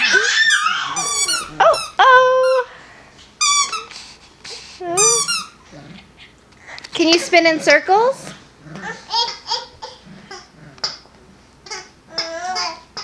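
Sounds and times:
puppy yipping and whining: 0.0 - 2.6, 4.9 - 5.6.

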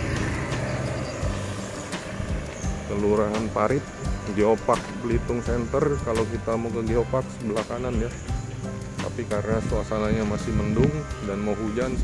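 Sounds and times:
street noise: 0.0 - 12.0
vehicle engine running: 0.0 - 12.0.

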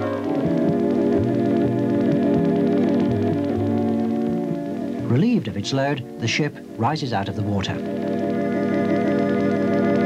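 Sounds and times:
organ-like keyboard chords: 0.0 - 10.0.

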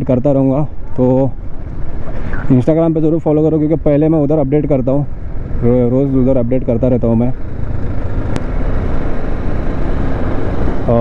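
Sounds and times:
motorcycle engine running: 0.9 - 11.0.

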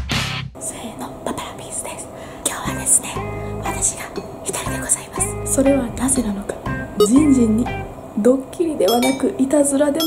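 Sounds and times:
woman whispering: 0.6 - 5.4
faint background music: 0.6 - 10.0.

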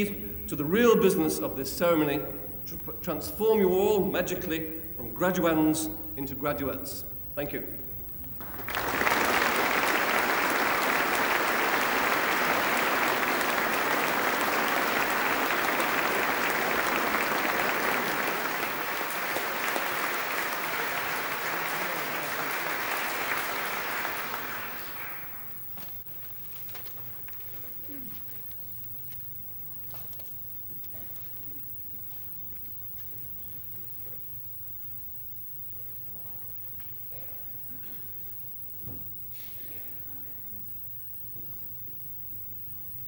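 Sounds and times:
audience applauding: 8.3 - 27.7.

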